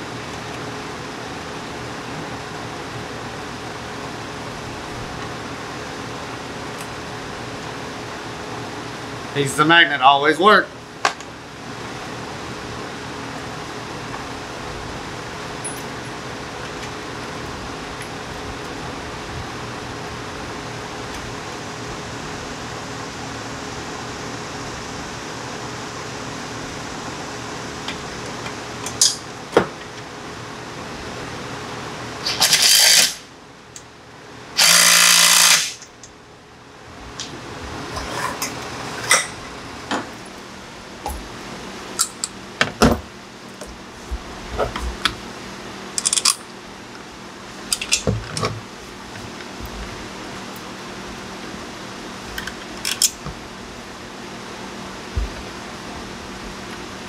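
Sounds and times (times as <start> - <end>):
fan hum: 0.0 - 57.0
cordless power driver running: 34.6 - 35.8.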